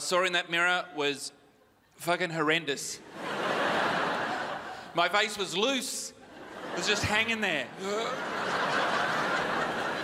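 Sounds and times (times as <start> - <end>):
large audience laughing: 3.0 - 5.5, 6.2 - 10.0.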